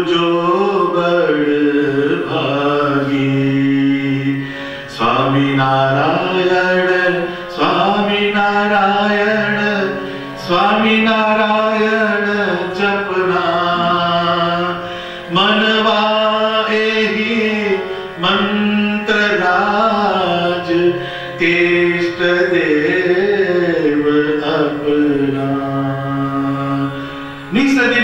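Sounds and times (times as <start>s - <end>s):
harmonium: 0.0s - 28.0s
man singing a long note: 0.0s - 28.0s.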